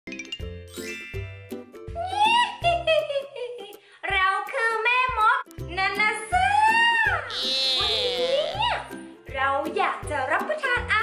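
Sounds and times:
high tinkling chime notes: 0.2s - 1.5s.

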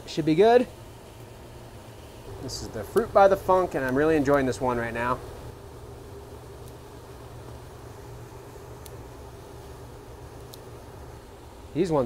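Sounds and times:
ventilation hum and hiss: 0.0s - 12.0s.

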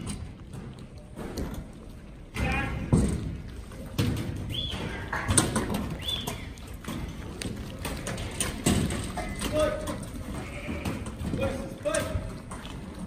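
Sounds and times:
sheep hooves clattering: 0.0s - 13.0s.

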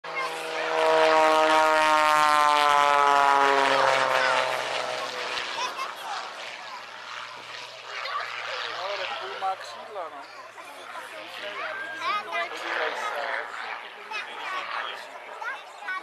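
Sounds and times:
propeller plane engine passing by: 0.1s - 16.0s.

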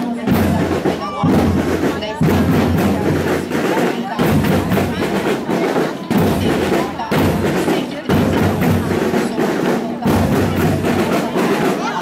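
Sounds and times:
crowd chatter: 0.0s - 12.0s
marching band drums: 0.0s - 12.0s.

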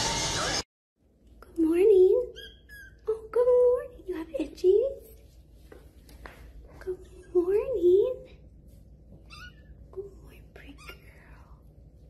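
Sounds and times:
kitten meowing: 9.3s - 9.7s
soft whispering: 9.9s - 12.0s.

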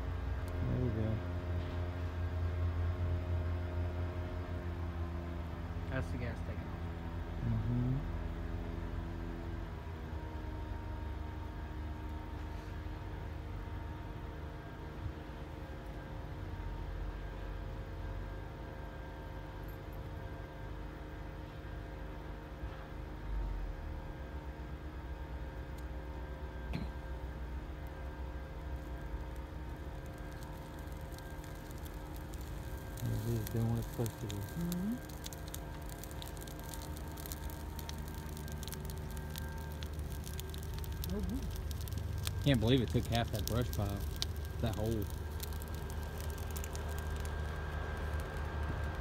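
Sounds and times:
fire low rumble: 0.0s - 49.0s
low engine hum: 0.0s - 49.0s
fire crackling: 24.4s - 49.0s.

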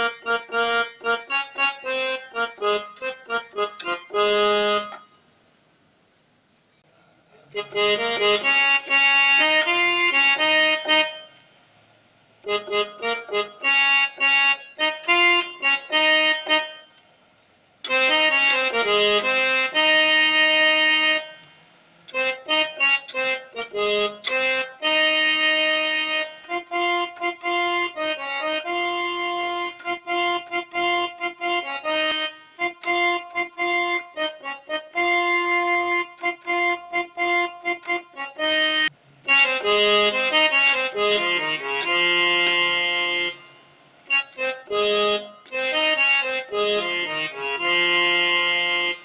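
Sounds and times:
electronic keyboard held note: 0.0s - 5.3s, 6.9s - 11.4s, 12.4s - 17.0s, 17.8s - 49.0s.

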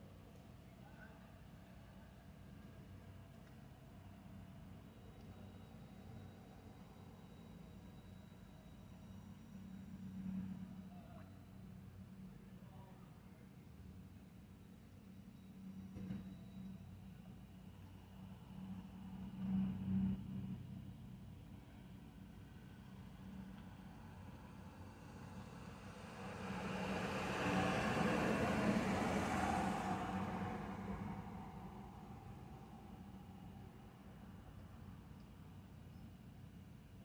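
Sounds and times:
low engine hum: 17.8s - 35.6s
vehicle passing by: 25.2s - 32.9s.

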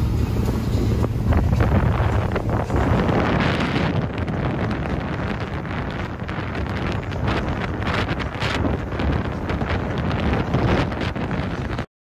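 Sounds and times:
wind buffeting microphone: 0.0s - 11.9s.

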